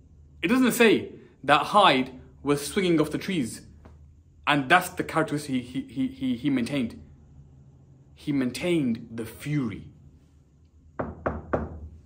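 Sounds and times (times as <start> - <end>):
knocks on a whiteboard: 11.0 - 11.9.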